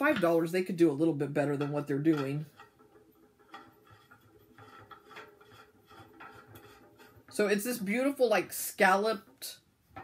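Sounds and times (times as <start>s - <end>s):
metal rod rubbing and clicking: 1.2s - 7.7s.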